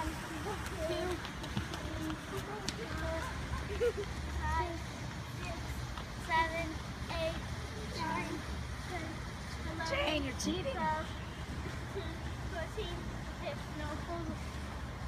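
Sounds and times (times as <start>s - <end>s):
children calling and chattering: 0.0s - 14.8s.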